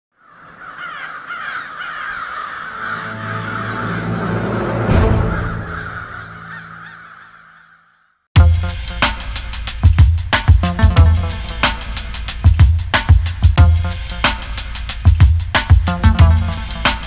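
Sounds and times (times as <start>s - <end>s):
crows cawing: 0.1s - 8.3s
deep booming hit: 4.6s - 6.3s.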